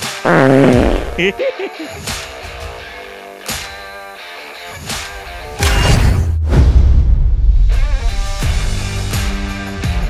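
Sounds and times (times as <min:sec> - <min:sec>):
comic fart sounds: 0:00.0 - 0:01.3
guitar music: 0:01.1 - 0:05.7.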